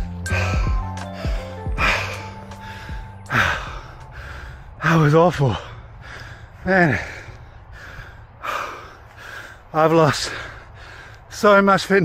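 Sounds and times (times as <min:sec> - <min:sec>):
soft background music: 0:00.0 - 0:05.5
man gasping breaths: 0:00.1 - 0:11.3.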